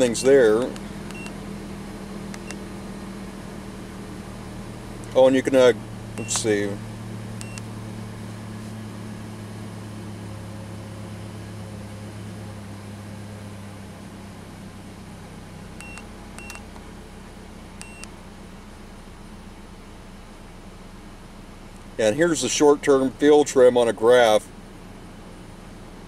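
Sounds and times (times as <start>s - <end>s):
vehicle engine idling: 0.0s - 26.0s
electronic key-press beeps: 1.1s - 1.4s, 2.4s - 2.6s, 6.2s - 6.5s, 7.4s - 7.7s, 15.8s - 16.7s, 17.8s - 18.1s.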